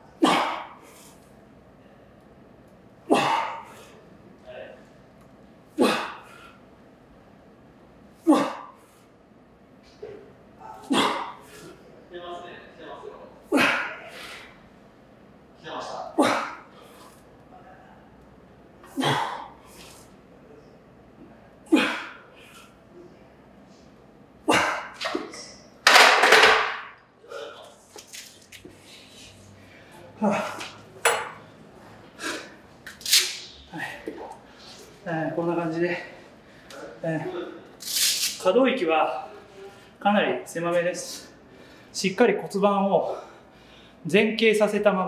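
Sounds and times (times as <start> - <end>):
man grunting with effort: 16.1 - 16.6, 30.2 - 30.7.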